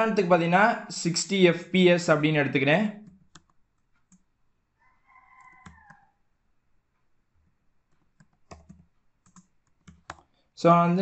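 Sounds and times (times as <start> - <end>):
keyboard keystrokes: 8.0 - 10.3.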